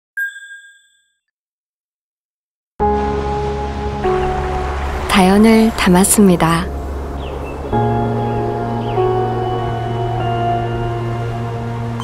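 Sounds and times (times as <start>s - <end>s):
bell-like chime ding: 0.2s - 1.2s.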